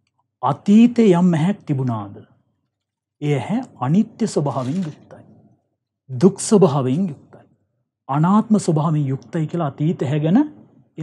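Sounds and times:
man talking: 0.4 - 2.2, 3.2 - 5.3, 6.1 - 7.5, 8.1 - 10.5.

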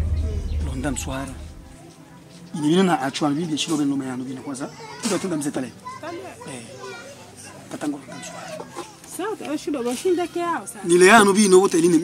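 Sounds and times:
children's voices: 0.0 - 10.9.

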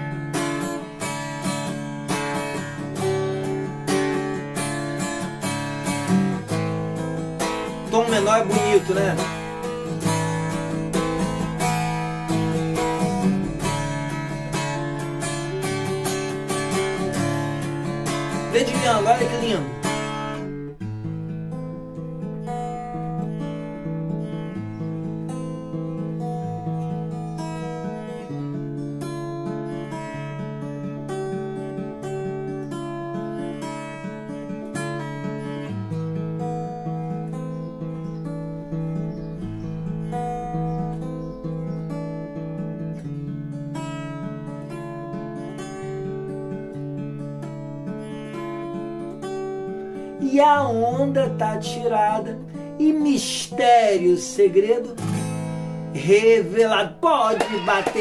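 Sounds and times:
acoustic guitar picking chords: 0.0 - 58.0.

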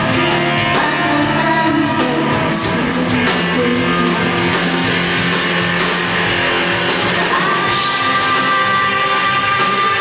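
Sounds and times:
live rock band playing: 0.0 - 10.0
woman singing: 0.1 - 4.6, 7.1 - 10.0.

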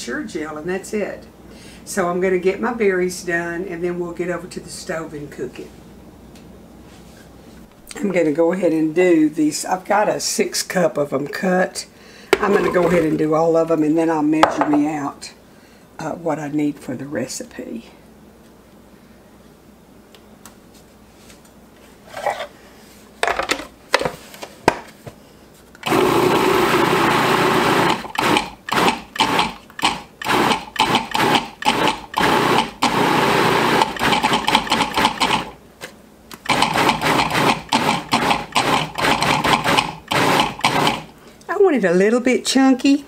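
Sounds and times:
food processor chopping: 25.8 - 35.6, 36.4 - 41.1.

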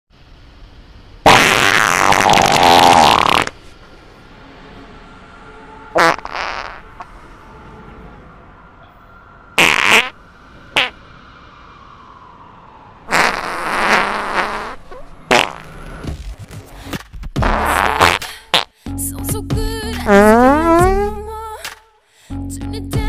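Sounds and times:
fart sounds: 1.2 - 3.6, 6.0 - 6.8, 9.6 - 10.2, 13.1 - 16.2, 17.4 - 18.7, 20.1 - 21.1.

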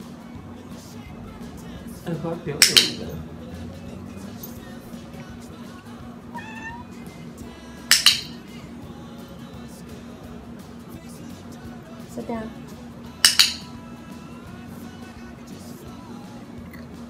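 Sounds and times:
cat meowing: 6.3 - 7.0
training clicker click: 7.9 - 8.3.

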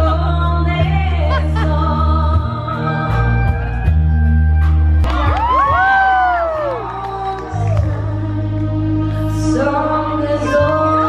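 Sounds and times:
live band playing: 2.4 - 11.0
audience whooping and cheering: 5.0 - 8.2.

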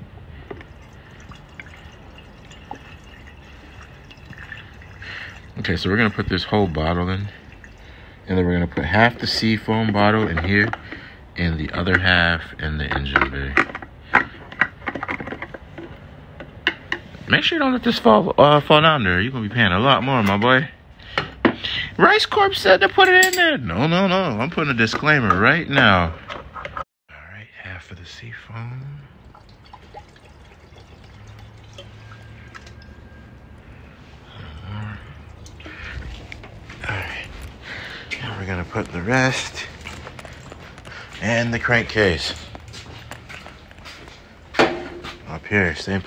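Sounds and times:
liquid glugging from plastic bottle: 0.5 - 8.0, 29.2 - 32.8.

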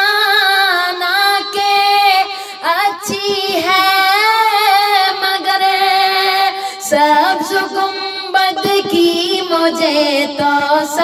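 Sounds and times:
person singing a long vowel: 0.0 - 11.0.

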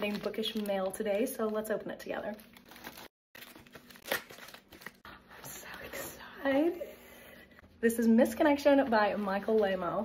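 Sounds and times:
plastic rustling: 0.0 - 5.0
plastic mailer tearing: 2.4 - 5.0.

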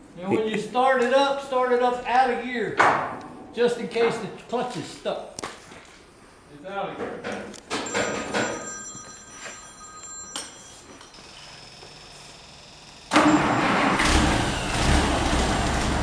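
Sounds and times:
engine starter clicks: 13.1 - 16.0
engine starting and idling: 13.1 - 16.0.

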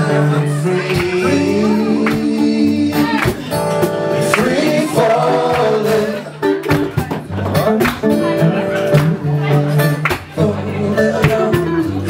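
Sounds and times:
person singing into a microphone: 0.0 - 7.2, 8.4 - 12.0
strummed acoustic guitar: 0.0 - 12.0.

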